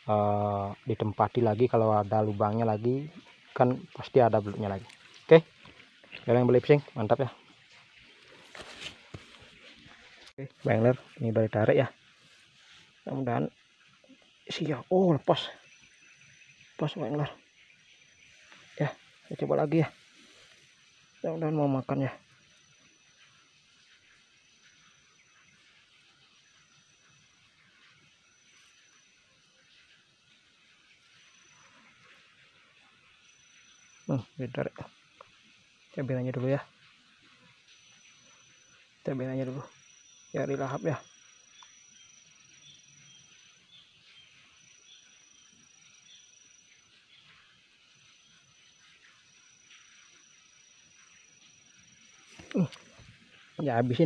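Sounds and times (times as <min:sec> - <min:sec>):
faint steady hiss: 0:00.0 - 0:54.0
hands rustling in wet mud: 0:07.7 - 0:10.4.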